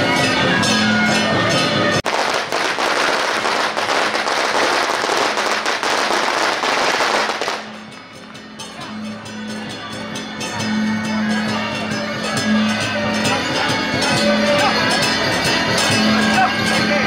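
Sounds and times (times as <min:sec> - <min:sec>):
firecrackers crackling: 0:02.0 - 0:08.2.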